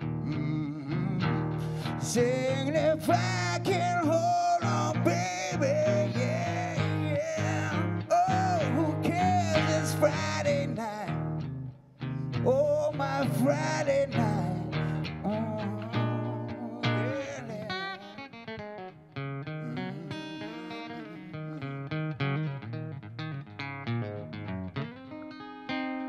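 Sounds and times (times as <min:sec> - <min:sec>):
strummed acoustic guitar: 0:00.0 - 0:22.9.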